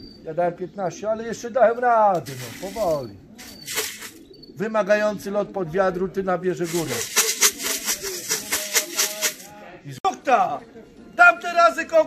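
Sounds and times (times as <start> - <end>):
pigeon wings flapping: 2.2 - 4.2, 6.6 - 9.5.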